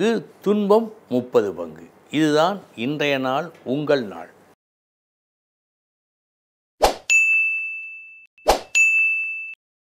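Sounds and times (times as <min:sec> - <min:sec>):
bright bell ding: 0:07.1 - 0:09.6.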